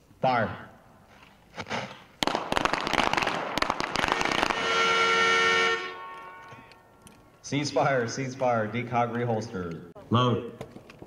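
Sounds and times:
rapid pistol shots: 0:02.2 - 0:04.6
steady horn-like tone: 0:04.5 - 0:06.8.

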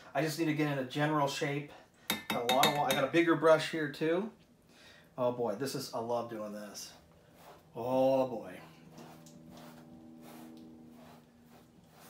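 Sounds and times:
paintbrush strokes on canvas: 0:06.3 - 0:12.0
steady low hum: 0:06.9 - 0:12.0.

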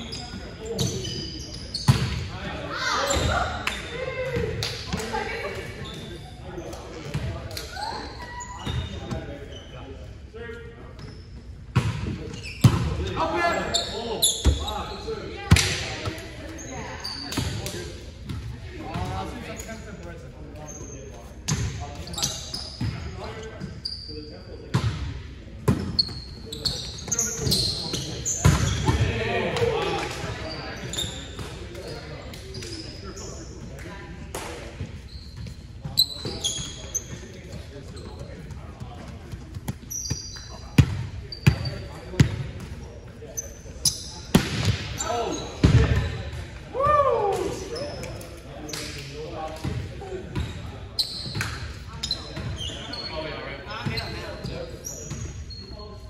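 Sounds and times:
sneakers squeaking: 0:00.0 - 0:56.0
players calling out: 0:44.9 - 0:48.0.

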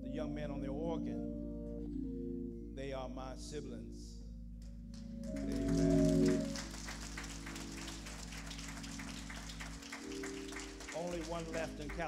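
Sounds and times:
organ holding chords: 0:00.0 - 0:12.0
congregation clapping: 0:04.6 - 0:12.0.

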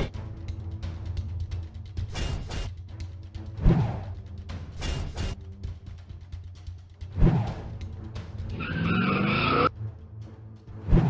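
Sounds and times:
background music: 0:00.0 - 0:11.0
layered screeching roar: 0:08.5 - 0:09.7.

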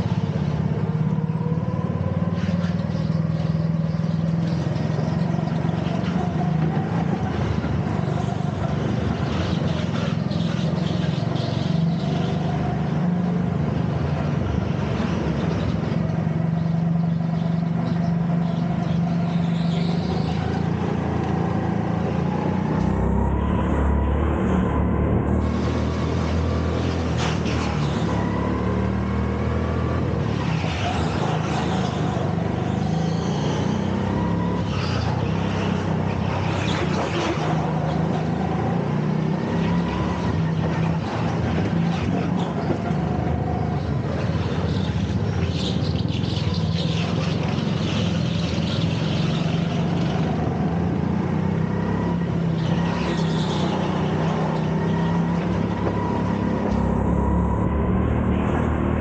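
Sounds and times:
go-kart engine revving: 0:00.0 - 0:59.0.

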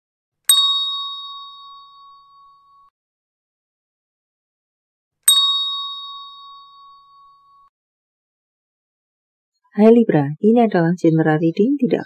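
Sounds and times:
bell-like ding: 0:00.5 - 0:02.9, 0:05.3 - 0:07.7.

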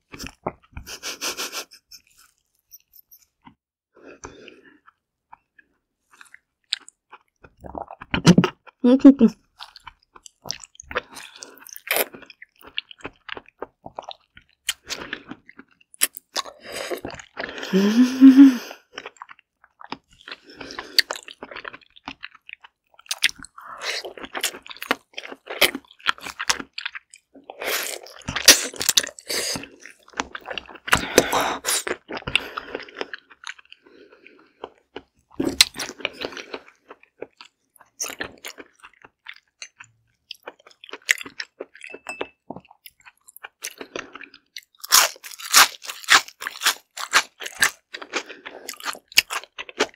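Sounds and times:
wet chewing: 0:19.0 - 0:49.9.

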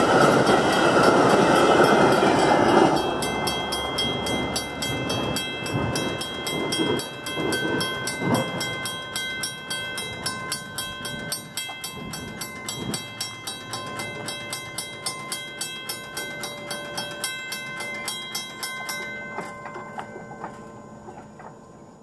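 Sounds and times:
crossing warning bell dinging: 0:00.0 - 0:22.0
low rumble of passing trains: 0:00.0 - 0:22.0.

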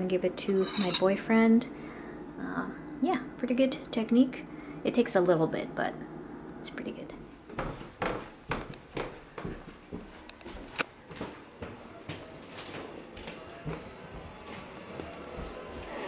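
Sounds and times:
soft background music: 0:11.9 - 0:16.0.

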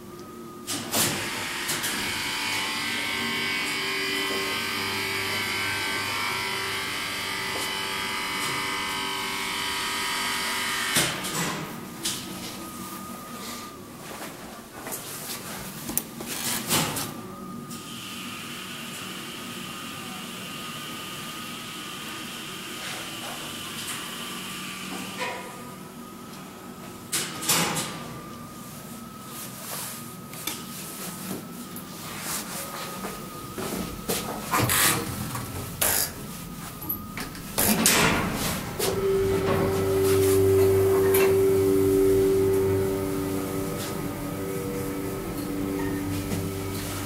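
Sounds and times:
elevator pump running: 0:30.2 - 0:47.0
elevator stopping thump: 0:37.0 - 0:47.0.

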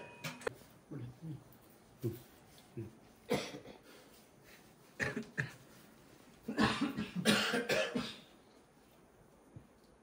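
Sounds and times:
person coughing harshly: 0:03.3 - 0:03.8, 0:06.5 - 0:08.3.

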